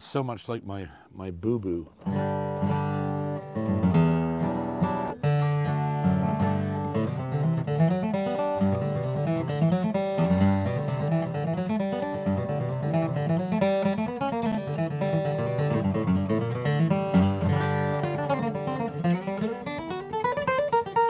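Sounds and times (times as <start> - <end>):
acoustic guitar playing: 1.7 - 21.0.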